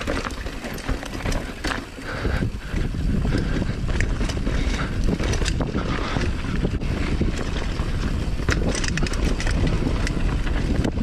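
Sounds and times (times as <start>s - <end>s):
bike clicks and rattles: 0.0s - 11.0s
bike tyres rolling on dirt: 0.0s - 11.0s
wind buffeting microphone: 0.0s - 11.0s.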